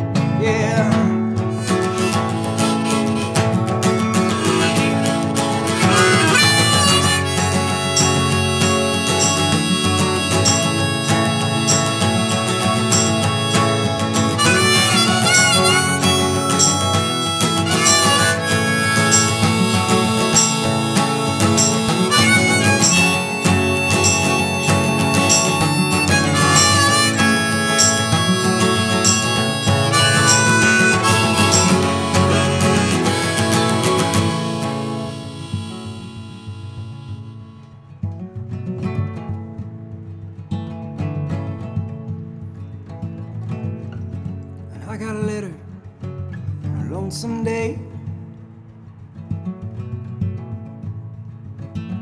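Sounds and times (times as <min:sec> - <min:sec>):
harmonica melody: 0:00.0 - 0:38.1
strummed acoustic guitar: 0:00.0 - 0:52.0.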